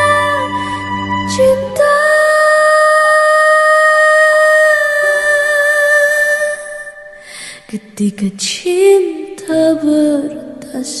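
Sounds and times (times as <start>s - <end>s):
woman singing high note: 0.0s - 7.1s.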